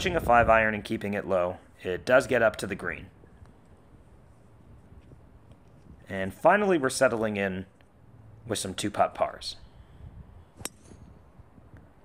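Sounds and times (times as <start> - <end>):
golf club striking ball: 10.6 - 11.2.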